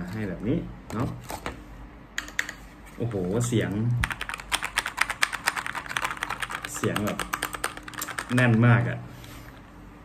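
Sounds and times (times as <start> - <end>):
mechanical keyboard typing fast: 4.0 - 8.9.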